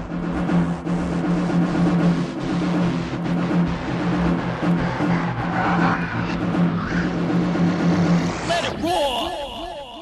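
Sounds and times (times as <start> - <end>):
distorted pulsing techno bass loop: 0.0 - 10.0.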